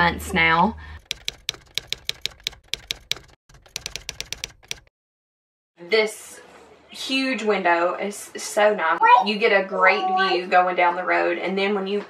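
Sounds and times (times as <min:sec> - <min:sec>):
keyboard keystroke clicks: 0:01.1 - 0:04.9.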